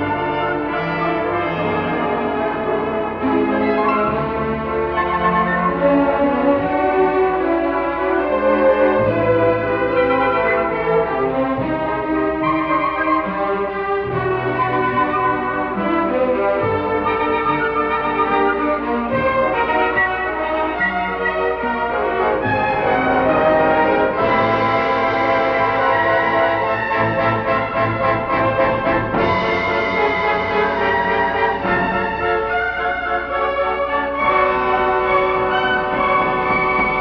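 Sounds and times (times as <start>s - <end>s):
orchestral music with brass: 0.0s - 37.0s.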